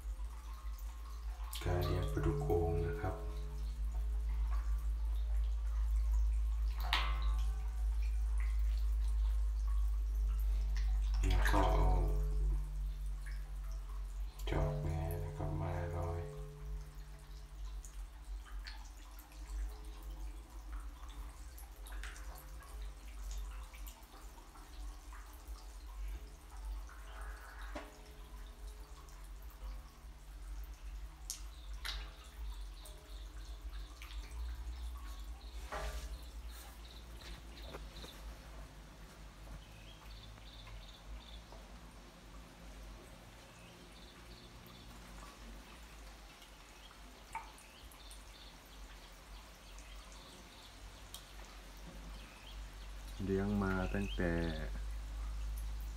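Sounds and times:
steady low hum: 0.0s - 41.3s
water dripping and plopping: 0.0s - 55.9s.

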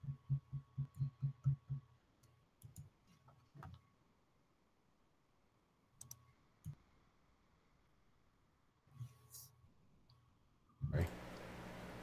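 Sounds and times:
low pulsing thumps: 0.0s - 1.8s.

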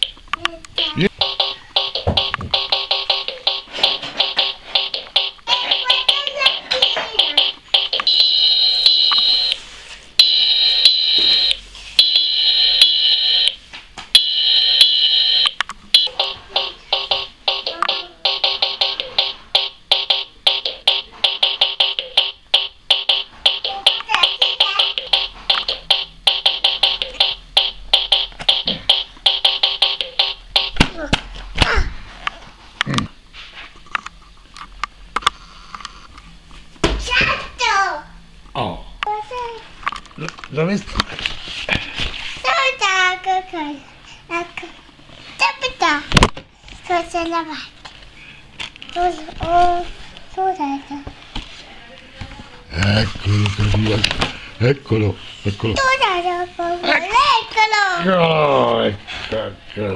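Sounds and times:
shrill electronic tones: 7.7s - 9.6s.

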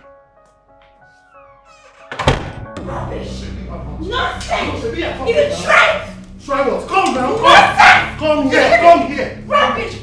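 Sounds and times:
person yelling angrily: 7.2s - 10.0s.

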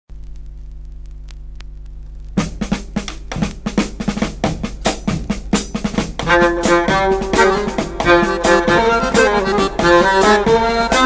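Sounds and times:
faint clicks: 0.1s - 2.4s
low electrical mains hum: 0.1s - 10.8s.

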